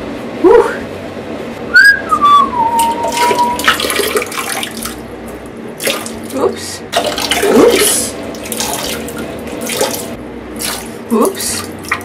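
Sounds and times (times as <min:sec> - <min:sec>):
person whistling: 0:01.7 - 0:03.6
water splashing into toilet bowl: 0:02.8 - 0:05.1, 0:05.8 - 0:12.0.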